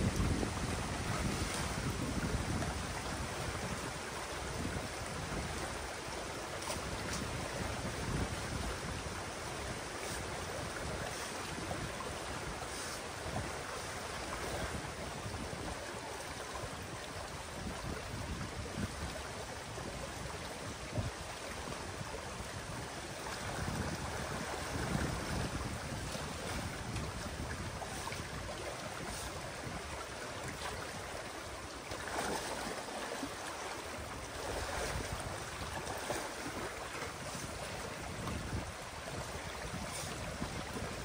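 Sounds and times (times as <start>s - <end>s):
wind buffeting microphone: 0.0s - 32.8s, 34.0s - 41.0s
water rushing: 0.0s - 41.0s.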